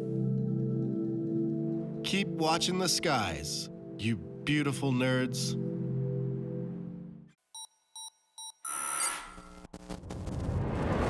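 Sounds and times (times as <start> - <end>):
short electronic beeps: 7.6 - 9.4.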